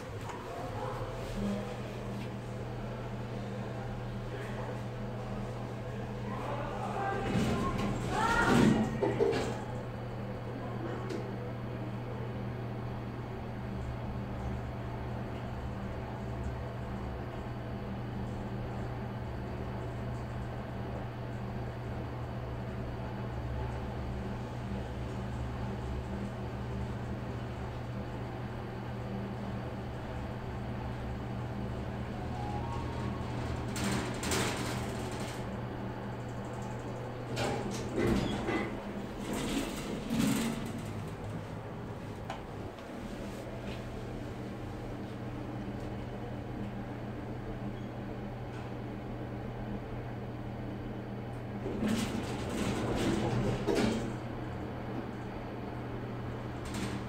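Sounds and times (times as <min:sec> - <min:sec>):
elevator low hum: 0:00.0 - 0:57.0
elevator doors closing: 0:06.8 - 0:10.0, 0:29.4 - 0:44.5, 0:51.6 - 0:55.2, 0:56.2 - 0:57.0.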